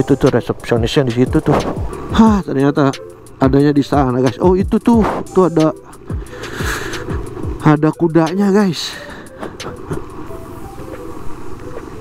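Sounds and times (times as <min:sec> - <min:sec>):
scooter engine humming: 0:00.0 - 0:12.0
tyres on wet road: 0:00.0 - 0:12.0.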